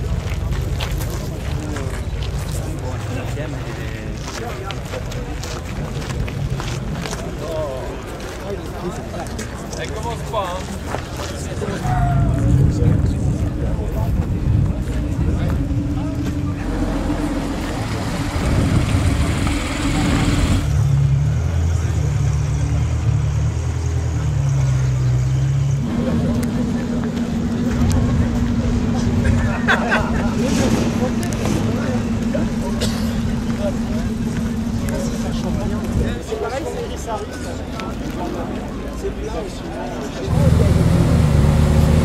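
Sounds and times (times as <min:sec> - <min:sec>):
car engines idling: 0:00.0 - 0:42.0
crowd chatter: 0:00.0 - 0:42.0.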